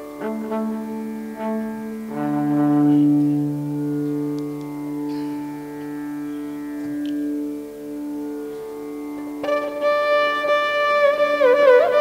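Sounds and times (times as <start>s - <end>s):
violin long bowed note: 0.0s - 12.0s.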